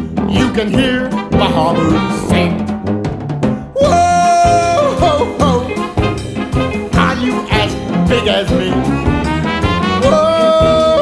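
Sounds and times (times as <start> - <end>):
drums and bass beat: 0.0 - 11.0
person singing: 3.6 - 6.1, 6.7 - 9.0, 9.9 - 11.0.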